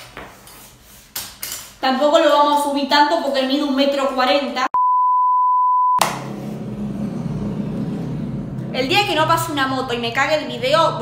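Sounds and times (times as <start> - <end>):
motorcycle engine passing by: 6.0 - 11.0.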